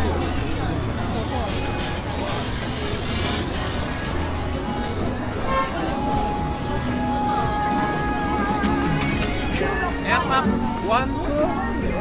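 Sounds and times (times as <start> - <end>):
street voices: 0.0 - 12.0
long steady tone: 4.4 - 9.0.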